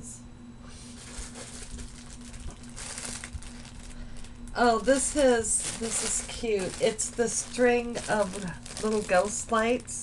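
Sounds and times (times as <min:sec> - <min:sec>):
low electrical hum: 0:00.0 - 0:10.0
packaging rustling: 0:00.8 - 0:09.8.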